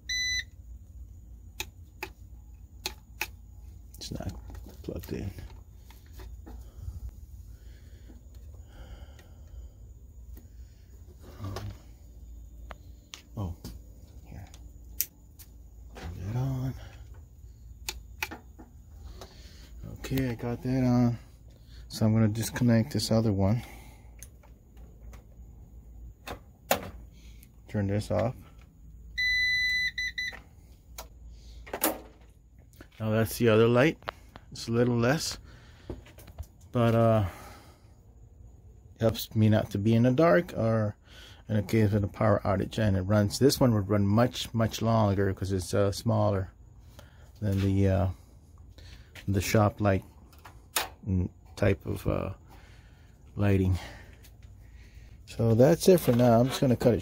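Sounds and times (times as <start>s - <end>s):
ups beeping: 0.0s - 0.6s, 29.2s - 30.4s
low steady hum: 0.0s - 57.0s.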